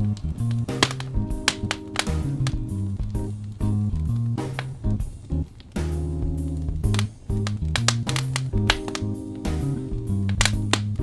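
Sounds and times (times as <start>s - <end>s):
smooth jazz music: 0.0s - 11.0s
wood fire crackling: 0.0s - 11.0s.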